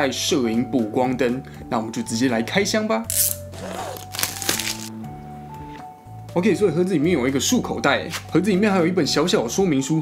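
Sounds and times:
background music: 0.0s - 10.0s
plastic shrink-wrap crinkling: 3.1s - 4.9s.

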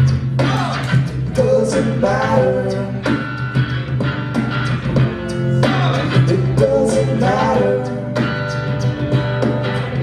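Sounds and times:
strummed rock guitar chords: 0.0s - 10.0s.

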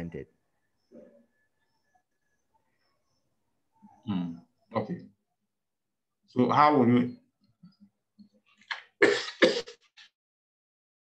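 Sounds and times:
person clearing throat: 9.0s - 9.8s.

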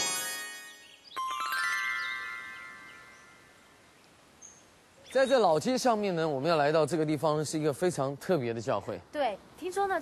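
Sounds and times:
bell-like chime tones ringing: 0.0s - 3.6s
faint background noise: 0.0s - 10.0s.

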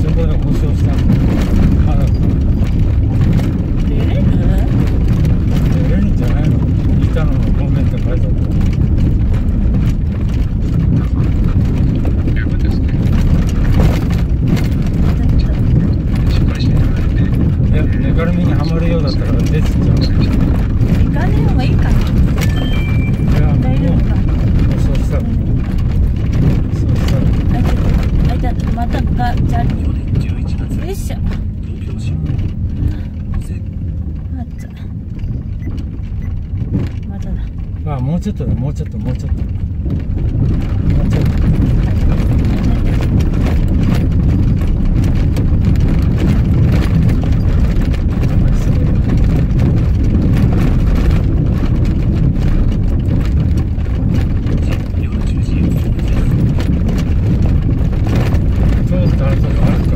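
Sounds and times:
stones knocking and rattling: 0.0s - 59.9s
tyres and engine rumbling: 0.0s - 59.9s.

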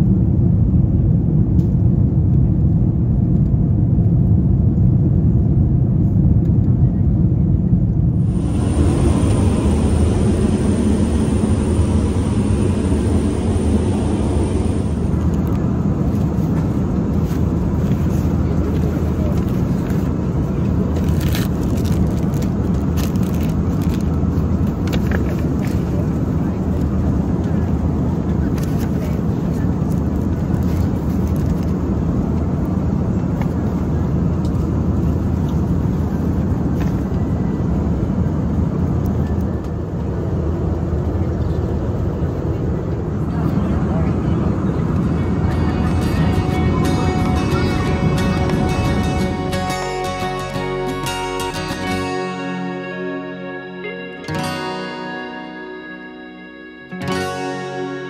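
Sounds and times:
airliner cabin engine rumble: 0.0s - 52.0s
faint high whine: 8.1s - 17.5s.

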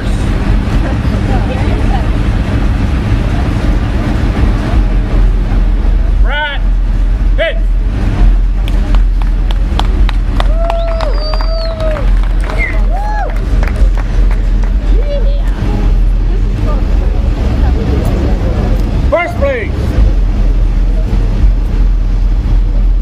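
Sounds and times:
low rumble: 0.0s - 23.0s
crowd clapping: 8.6s - 15.7s
people whooping: 10.2s - 15.4s
long drawn-out shout: 10.4s - 13.5s.

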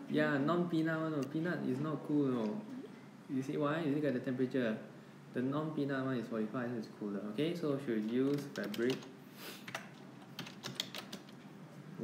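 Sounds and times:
keyboard typing clicks: 8.2s - 9.1s, 9.7s - 11.4s.

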